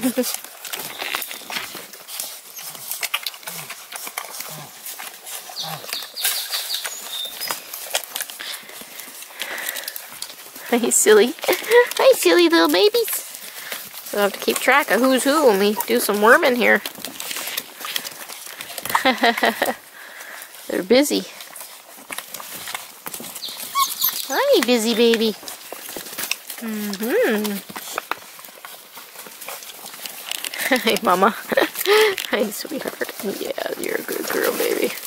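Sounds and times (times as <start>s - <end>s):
puppies suckling: 0.0s - 35.0s.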